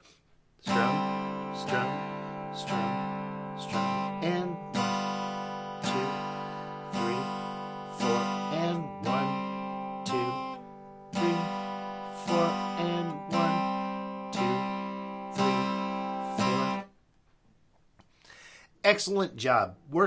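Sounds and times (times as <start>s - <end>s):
acoustic guitar strumming chords: 0.6s - 17.0s.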